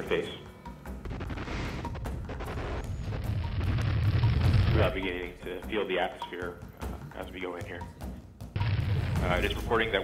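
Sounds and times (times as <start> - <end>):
deep rumble: 1.0 - 4.8.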